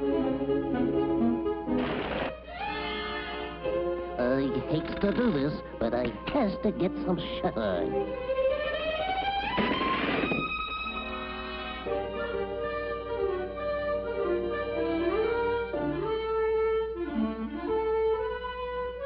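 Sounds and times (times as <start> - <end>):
brief noisy burst: 1.8 - 2.4, 9.5 - 10.7
orchestral music led by violin: 2.4 - 9.6, 10.4 - 19.0.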